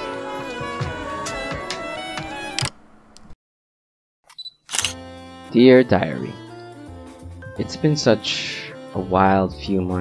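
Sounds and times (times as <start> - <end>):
music: 0.0 - 2.7, 4.8 - 10.0.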